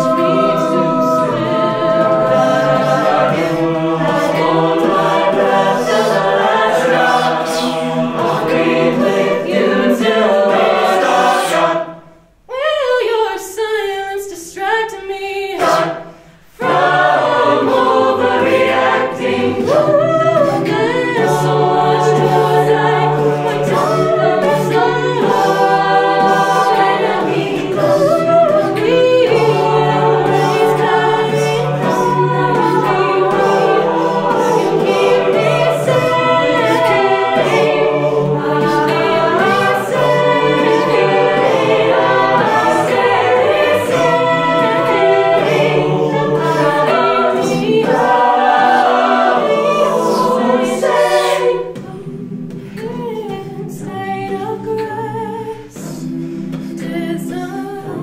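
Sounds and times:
vocal percussion beat: 0:00.0 - 0:12.6, 0:15.6 - 0:58.0
a cappella group singing: 0:00.0 - 0:58.0
female lead voice singing: 0:50.4 - 0:56.0.

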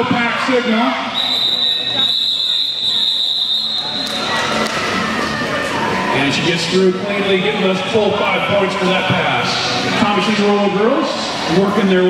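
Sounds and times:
crowd chatter: 0:00.0 - 0:12.0
referee's whistle blast: 0:01.1 - 0:04.2.

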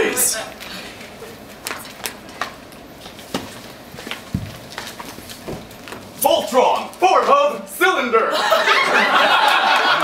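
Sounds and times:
footsteps on wooden floor: 0:01.7 - 0:06.2
body thumping onto floor: 0:04.3 - 0:04.7.

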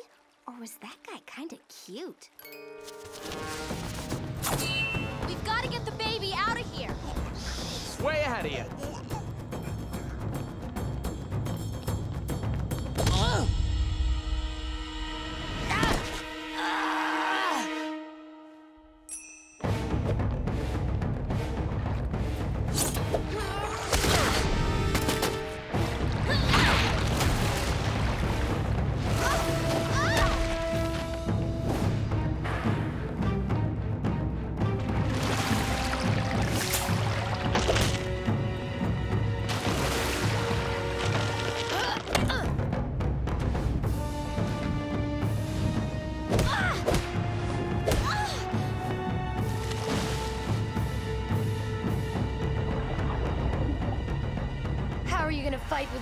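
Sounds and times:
dramatic music score: 0:02.5 - 0:56.0.

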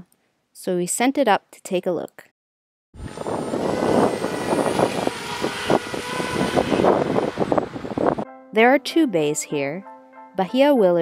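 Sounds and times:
drone propellers whirring: 0:03.0 - 0:08.2.

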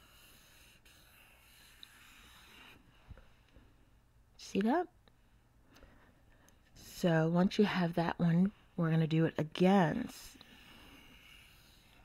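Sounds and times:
marker scratching on paper: 0:00.0 - 0:02.8, 0:10.5 - 0:12.0.

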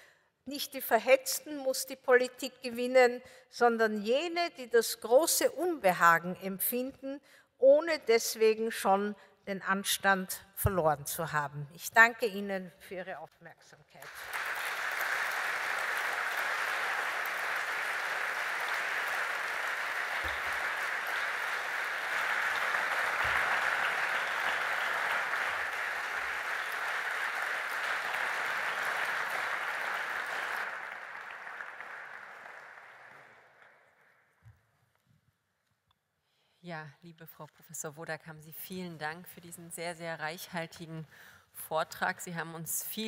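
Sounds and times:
audience applauding: 0:14.0 - 0:34.0.

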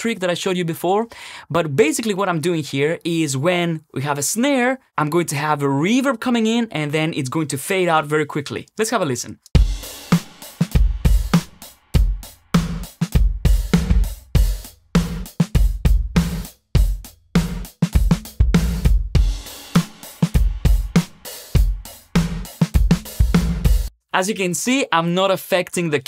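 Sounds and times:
drum loop with gated snare reverb: 0:09.5 - 0:23.9
dry kick drum: 0:09.6 - 0:09.9, 0:10.7 - 0:23.9.

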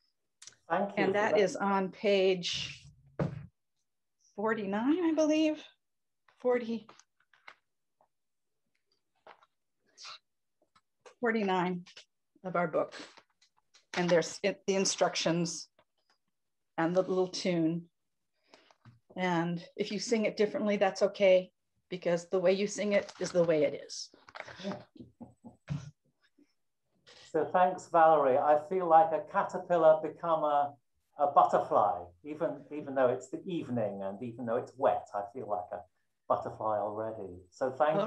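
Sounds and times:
paper clicks and rustles: 0:24.2 - 0:24.8.

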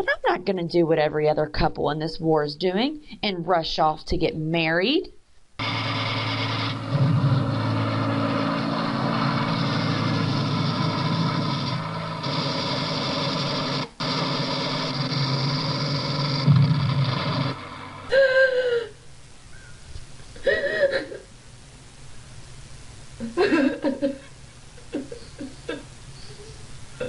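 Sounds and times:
aircraft engine droning: 0:05.6 - 0:18.7.

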